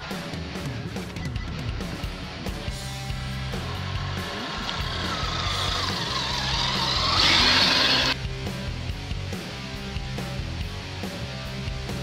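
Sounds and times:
background music: 0.0s - 12.0s
toy car electric motor whining: 3.4s - 8.2s.

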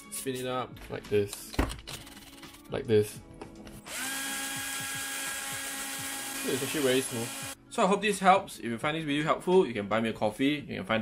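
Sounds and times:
cordless drill whine: 3.9s - 7.6s.

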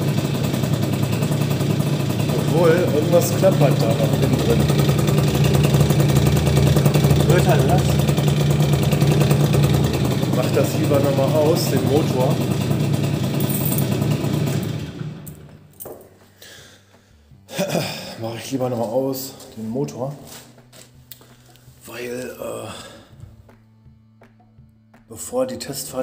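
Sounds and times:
scooter engine idling: 0.0s - 20.1s.

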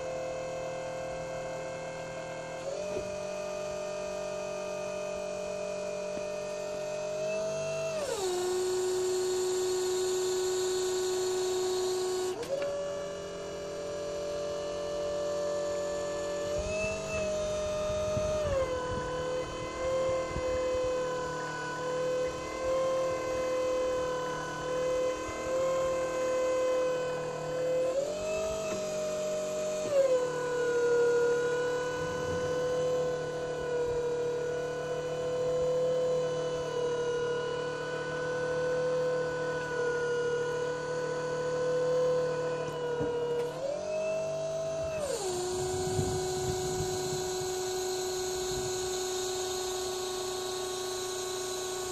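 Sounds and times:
hydraulic system whine: 0.0s - 51.9s.

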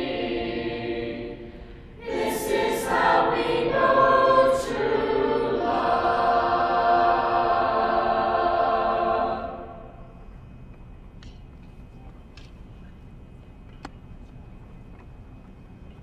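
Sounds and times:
choir singing a cappella: 0.0s - 10.2s.

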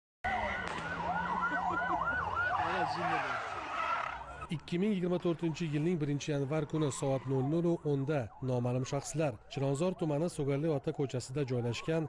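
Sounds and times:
emergency sirens yelping: 0.2s - 12.0s.

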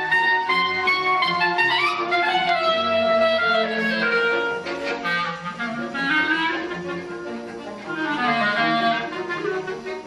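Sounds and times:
clarinet: 0.0s - 10.0s
string quartet: 0.0s - 10.0s.

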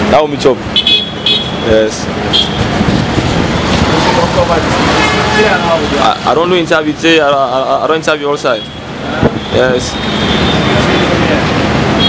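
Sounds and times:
passing traffic: 0.0s - 12.0s
voices talking: 0.0s - 12.0s.

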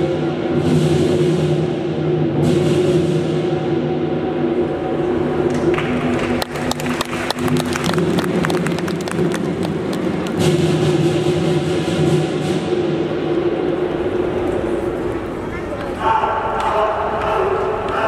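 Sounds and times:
large drum strokes: 0.0s - 6.2s, 7.4s - 15.2s
quick sharp percussion strikes: 6.6s - 13.0s.

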